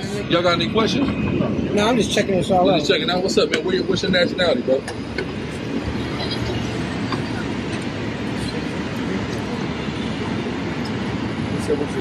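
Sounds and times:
low rumble of street traffic: 0:00.0 - 0:12.0.

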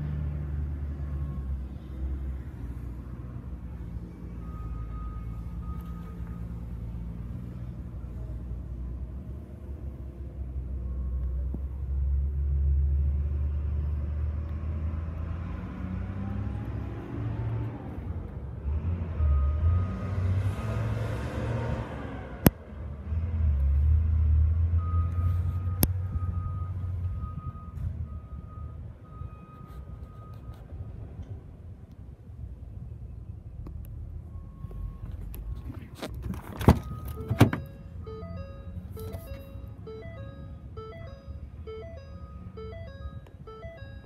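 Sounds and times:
motor vehicle rumbling: 0:00.0 - 0:44.0
short beeps: 0:36.8 - 0:44.0.

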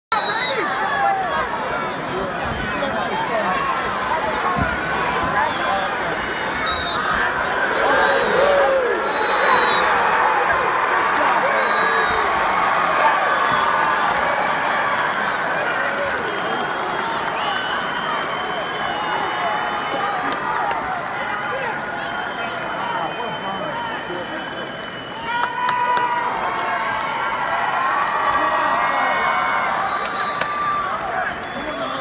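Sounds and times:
crowd shouting and cheering: 0:00.1 - 0:32.0.

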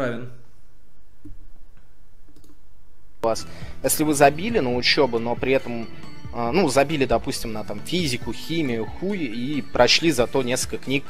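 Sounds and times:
computer mouse clicks: 0:01.2 - 0:02.6.

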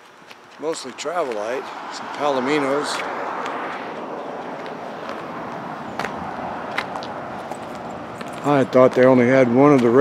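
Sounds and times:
busy road traffic: 0:00.0 - 0:10.0.

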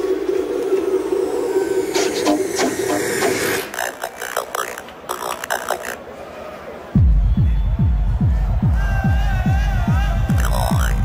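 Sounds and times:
buzzing electronic noise drone: 0:00.0 - 0:06.2
sharp clicks: 0:02.0 - 0:06.0.

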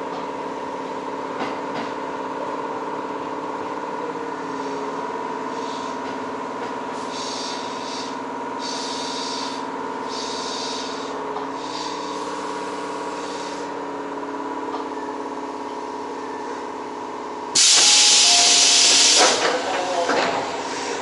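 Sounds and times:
electric train humming: 0:00.0 - 0:21.0
compressed air hiss: 0:07.0 - 0:13.7, 0:17.6 - 0:19.5.

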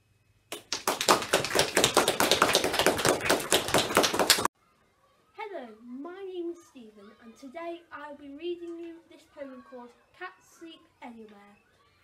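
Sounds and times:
people clapping: 0:00.5 - 0:04.5.

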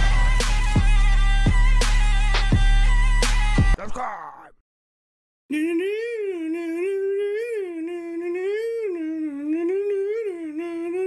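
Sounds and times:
person humming: 0:05.5 - 0:11.0.

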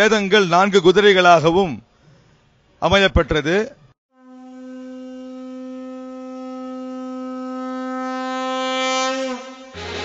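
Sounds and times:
conch shell blown: 0:04.1 - 0:10.0.

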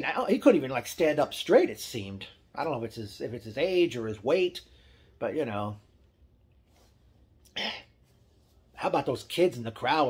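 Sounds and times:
man coughing: 0:07.5 - 0:08.0.

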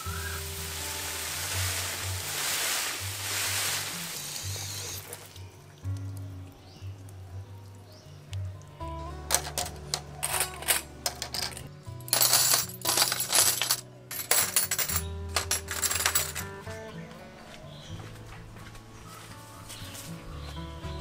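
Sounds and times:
soft background music: 0:00.0 - 0:21.0
metal hooks clinking: 0:09.2 - 0:16.6.

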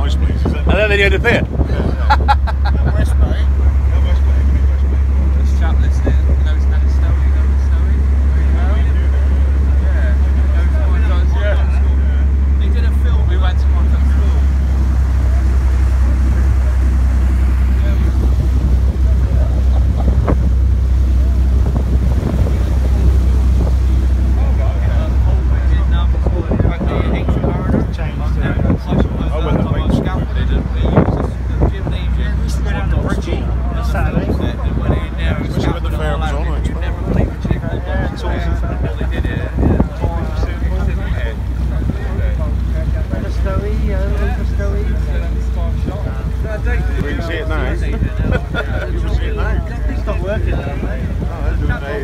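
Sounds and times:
wind on microphone: 0:00.0 - 0:12.6, 0:13.2 - 0:52.0
boat engine drone: 0:00.0 - 0:52.0
rushing water: 0:00.0 - 0:52.0.

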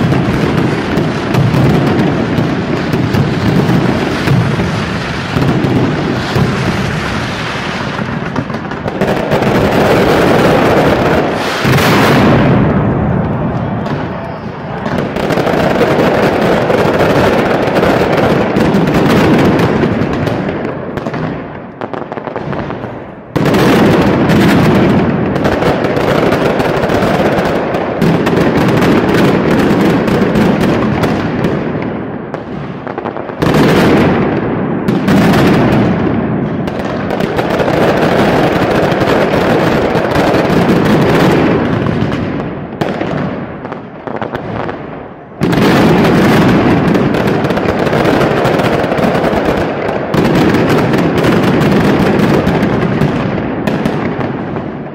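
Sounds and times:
firecrackers rattling bangs: 0:00.0 - 0:54.9.

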